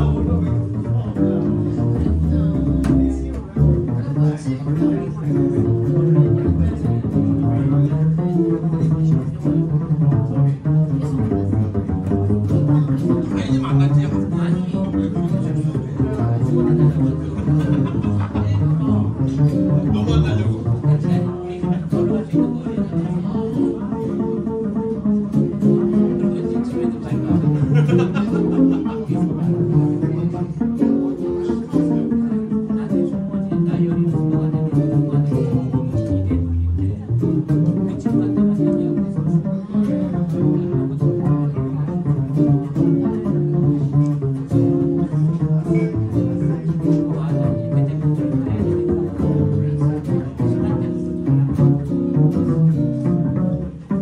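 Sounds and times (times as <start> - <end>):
plucked double bass solo: 0.0 - 54.0.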